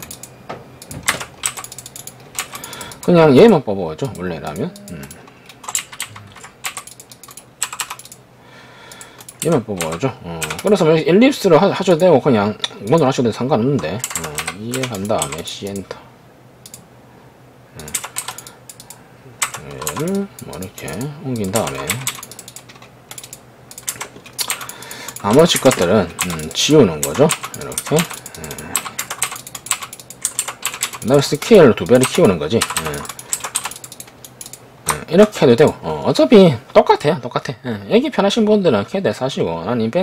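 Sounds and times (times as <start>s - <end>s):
keyboard keystrokes: 5.6s - 8.2s, 17.8s - 20.2s, 20.8s - 31.1s, 31.8s - 35.0s.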